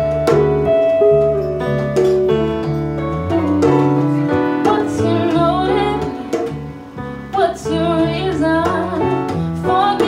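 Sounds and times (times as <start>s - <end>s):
band playing: 0.0s - 10.0s
woman singing lead: 3.4s - 10.0s.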